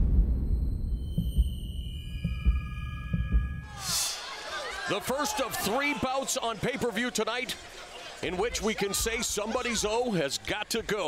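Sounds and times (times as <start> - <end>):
deep rumbling thuds: 0.0 - 3.7
high held ringing tones: 0.6 - 4.3.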